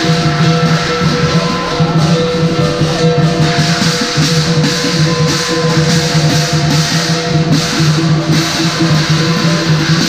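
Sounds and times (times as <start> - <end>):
big drum booming: 0.0 - 10.0
cymbals clashing: 0.0 - 10.0
gong: 0.0 - 10.0.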